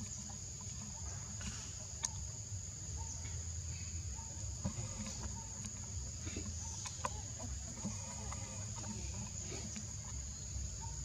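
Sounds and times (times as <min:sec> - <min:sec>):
faint clicks: 0:00.0 - 0:02.3.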